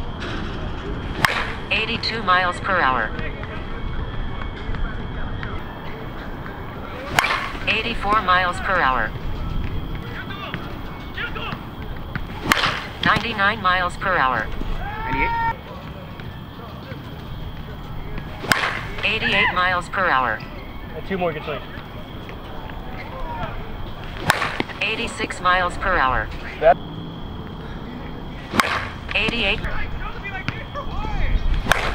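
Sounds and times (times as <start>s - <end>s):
low steady background noise: 0.0s - 31.9s
bat hitting softball: 1.0s - 2.1s, 5.6s - 9.0s, 10.5s - 15.3s, 18.2s - 19.6s, 22.1s - 25.1s, 28.4s - 29.8s, 31.5s - 31.9s.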